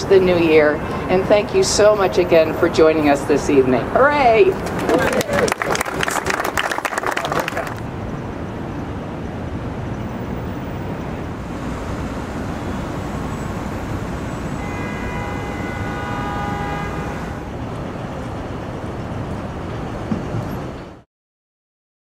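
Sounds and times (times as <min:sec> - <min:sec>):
city traffic rumble: 0:00.0 - 0:21.1
chord of high steady tones: 0:10.9 - 0:17.6.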